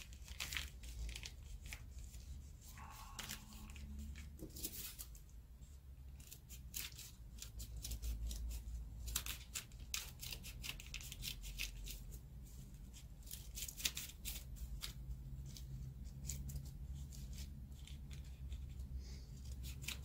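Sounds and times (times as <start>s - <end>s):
low steady hum: 0.0s - 20.0s
scissors snipping paper: 6.1s - 12.2s, 12.9s - 18.8s, 19.4s - 20.0s.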